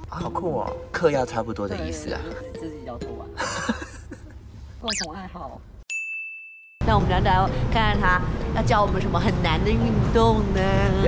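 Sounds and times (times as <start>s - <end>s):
woman talking: 4.8s - 5.6s, 6.8s - 11.0s
high bell-like ding: 5.9s - 6.8s.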